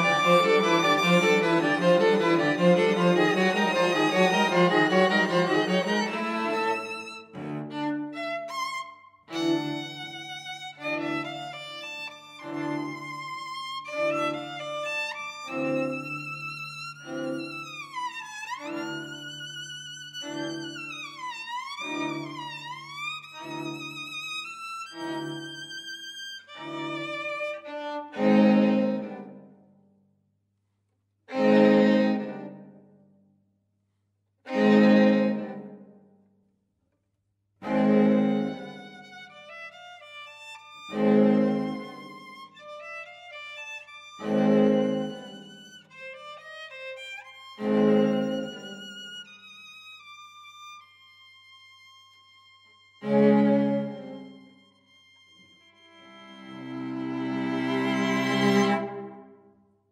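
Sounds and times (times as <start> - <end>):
string quartet playing: 0.0 - 29.4, 31.3 - 32.7, 34.5 - 35.9, 37.6 - 50.8, 51.9 - 54.6, 55.2 - 59.4.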